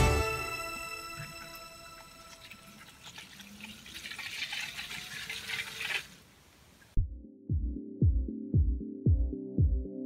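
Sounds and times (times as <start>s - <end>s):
water splashing and bubbling: 1.9s - 6.3s.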